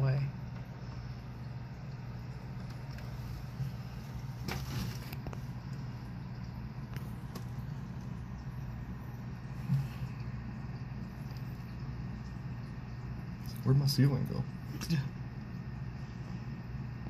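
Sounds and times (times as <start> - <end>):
aquarium equipment humming: 0.0 - 17.0.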